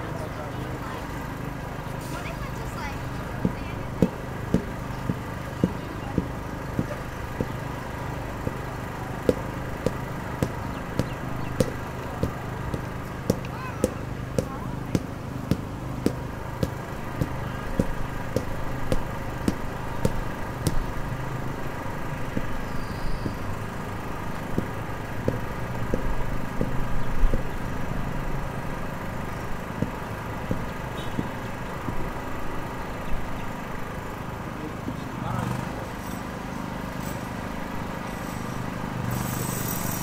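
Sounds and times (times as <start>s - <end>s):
engines and machinery humming: 0.0s - 40.0s
sharp regular knocking: 3.0s - 33.0s.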